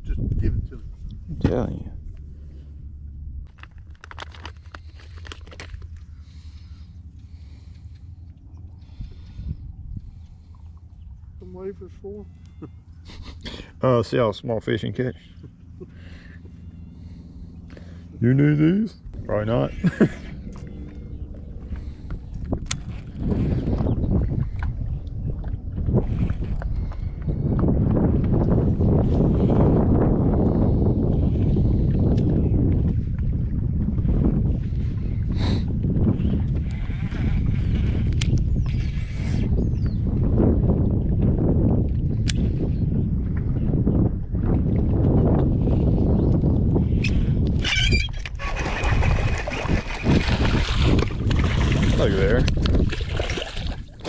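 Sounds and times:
wind buffeting microphone: 0:00.0 - 0:18.3, 0:19.0 - 0:54.0.

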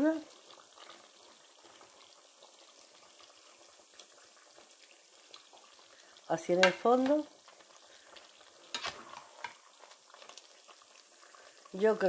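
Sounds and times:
spoon scooping stew: 0:07.5 - 0:10.6.

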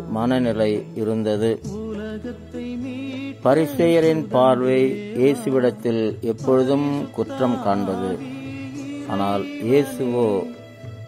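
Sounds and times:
man chanting melodically: 0:00.0 - 0:10.6
low drone background music: 0:00.0 - 0:11.0.

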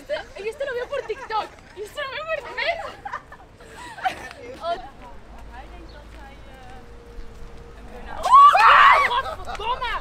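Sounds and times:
woman screaming: 0:08.2 - 0:09.3.

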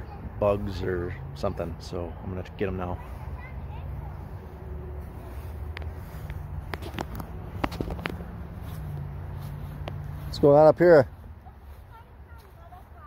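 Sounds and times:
footsteps outdoors: 0:00.0 - 0:13.0
sharp clicks and knocks: 0:06.6 - 0:08.3.

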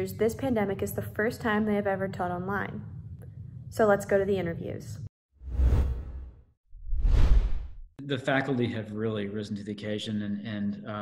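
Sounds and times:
whoosh sound effects: 0:05.4 - 0:07.9.

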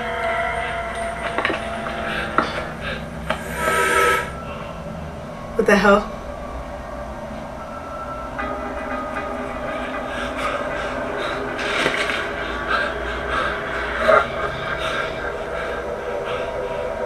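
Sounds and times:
rumbling hissing ambient soundtrack: 0:00.0 - 0:17.0.

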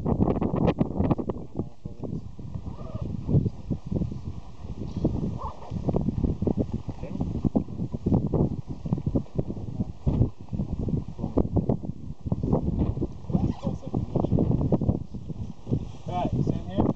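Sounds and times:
wind buffeting microphone: 0:00.0 - 0:16.9.

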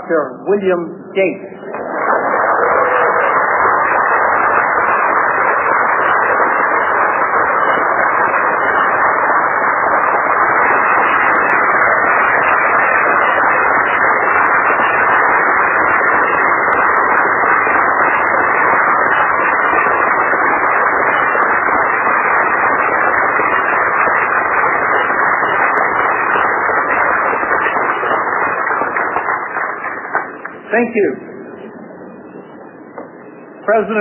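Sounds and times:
muffled audience applause: 0:01.7 - 0:31.2.

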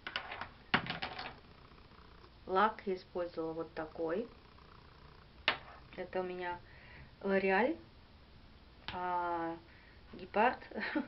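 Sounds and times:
small objects clicking and tapping: 0:00.0 - 0:01.4.

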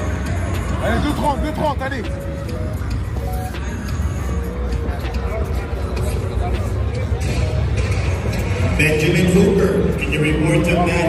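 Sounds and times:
background music: 0:00.0 - 0:11.0
many people talking: 0:00.0 - 0:11.0.

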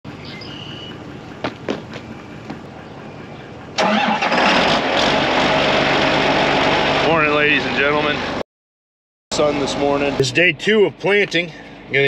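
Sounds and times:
tractor diesel engine running: 0:00.1 - 0:08.4, 0:09.3 - 0:12.0.

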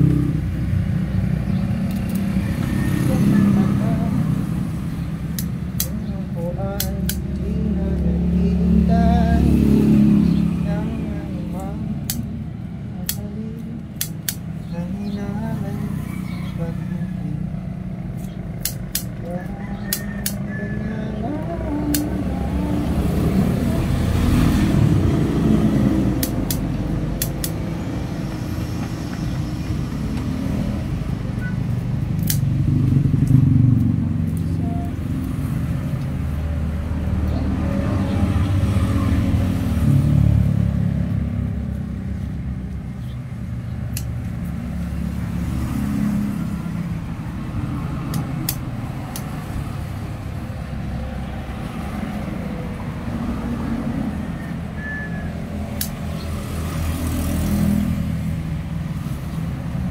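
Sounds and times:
low rumble of passing vehicles: 0:00.0 - 0:59.9
sharp clicks: 0:05.2 - 0:08.1, 0:11.5 - 0:12.4, 0:13.0 - 0:15.1, 0:18.2 - 0:20.5, 0:21.9 - 0:23.0, 0:26.2 - 0:27.6, 0:31.7 - 0:32.6, 0:43.8 - 0:44.6, 0:48.1 - 0:49.6, 0:55.7 - 0:56.2.

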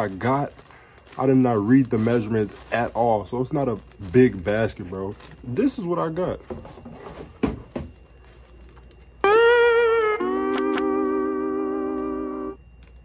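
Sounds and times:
comic falling two-note sting: 0:09.2 - 0:12.6.

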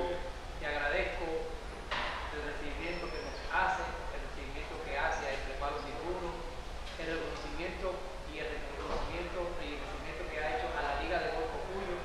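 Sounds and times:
man speaking: 0:00.0 - 0:01.7, 0:02.3 - 0:12.0
steady low hum: 0:00.0 - 0:12.0.

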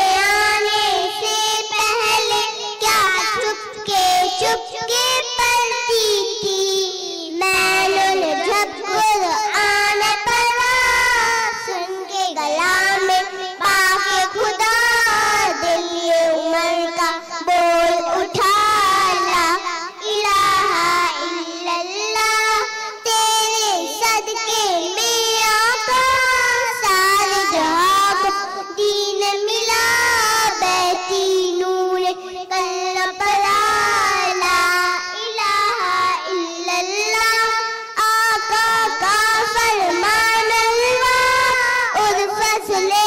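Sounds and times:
girls singing devotional song: 0:00.0 - 0:43.0.

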